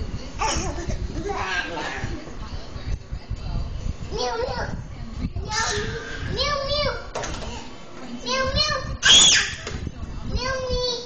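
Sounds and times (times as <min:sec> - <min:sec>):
toddlers babbling: 0:05.4 - 0:07.0
toddler squealing: 0:09.0 - 0:09.6.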